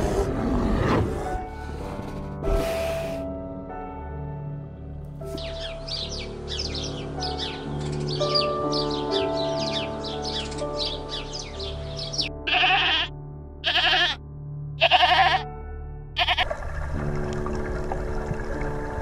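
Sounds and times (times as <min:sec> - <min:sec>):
soft ambient music: 0:00.0 - 0:19.0
goat bleating: 0:12.4 - 0:14.2, 0:14.8 - 0:15.4, 0:16.2 - 0:16.5.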